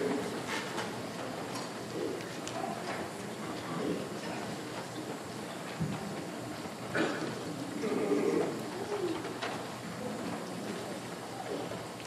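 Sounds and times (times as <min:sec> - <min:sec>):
murmured voices: 0:01.4 - 0:12.0.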